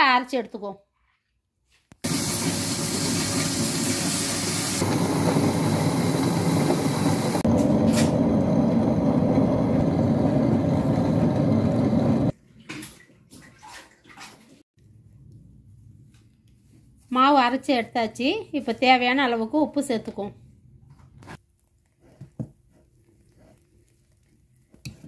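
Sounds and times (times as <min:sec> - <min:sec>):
wet grinder running: 0:02.0 - 0:12.3.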